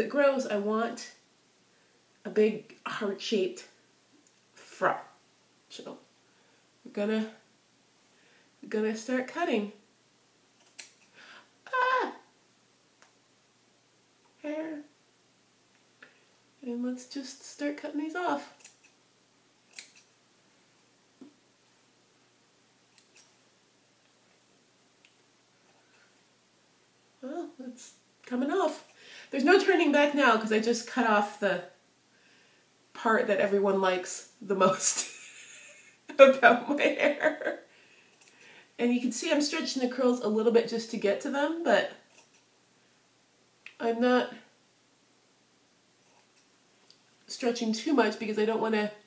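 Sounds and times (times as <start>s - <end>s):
scissors snipping hair: 10.5s - 11.1s, 18.5s - 19.0s, 19.6s - 20.1s, 22.9s - 23.3s, 38.1s - 38.4s, 42.1s - 42.5s
sharp scissors click: 10.6s - 11.1s, 19.7s - 20.1s
person speaking: 11.6s - 12.3s, 14.4s - 14.9s, 16.6s - 18.6s, 27.2s - 31.8s, 33.0s - 37.7s.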